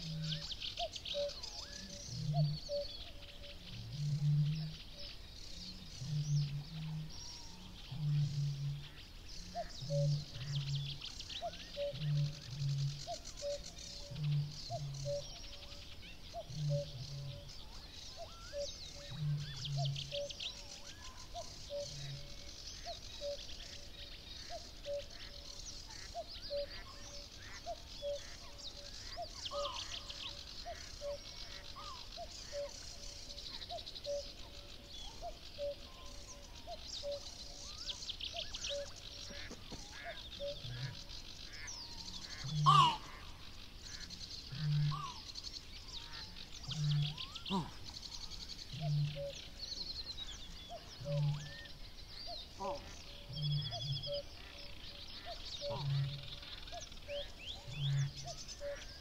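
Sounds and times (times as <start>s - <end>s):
cuckoo calling: 0.0s - 4.8s, 6.0s - 23.9s, 24.5s - 49.6s, 50.3s - 51.7s, 52.4s - 59.0s
songbirds dawn chorus: 0.0s - 59.0s.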